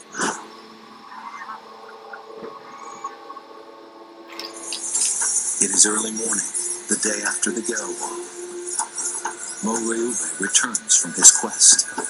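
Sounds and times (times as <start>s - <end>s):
faint chirps: 0.0s - 12.0s
quiet held tones: 0.0s - 12.0s.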